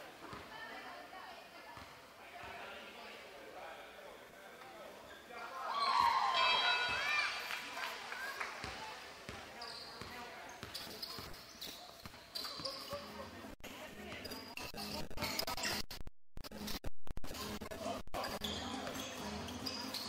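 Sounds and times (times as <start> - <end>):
sneaker squeaks: 5.0 - 7.2, 8.6 - 13.3, 14.0 - 15.8, 18.2 - 20.0
basketball bouncing on court: 8.6 - 12.9.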